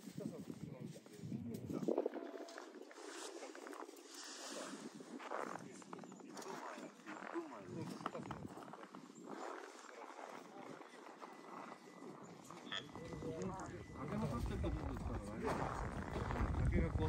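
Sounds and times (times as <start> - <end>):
people talking indistinctly: 0.2 - 17.0.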